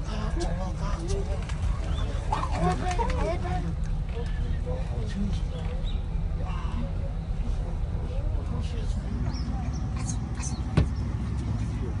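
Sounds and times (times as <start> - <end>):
engine rumbling: 0.0 - 12.0
people's voices: 0.0 - 12.0.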